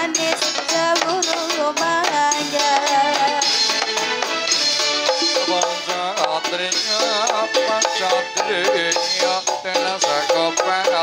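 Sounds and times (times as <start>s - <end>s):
drums: 0.0s - 11.0s
high clicking beat: 0.0s - 11.0s
pitch-bending melody: 4.3s - 10.5s.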